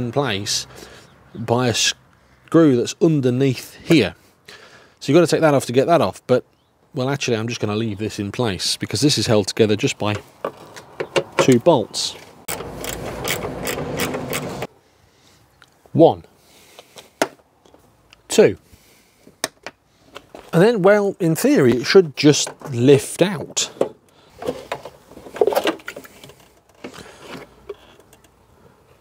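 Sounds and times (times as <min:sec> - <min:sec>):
socket ratchet clicking: 0:12.5 - 0:14.7
plastic scraping rustle: 0:24.3 - 0:27.8.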